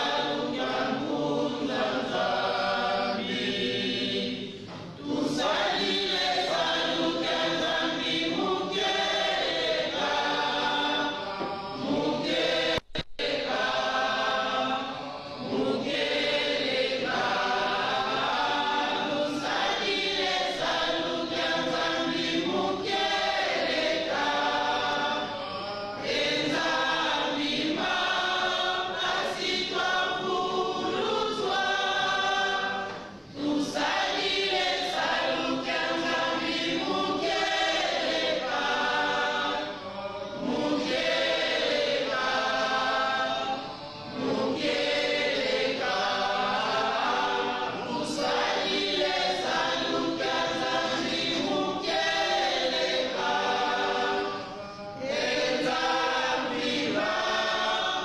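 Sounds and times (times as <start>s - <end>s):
choir singing: 0.0s - 58.0s.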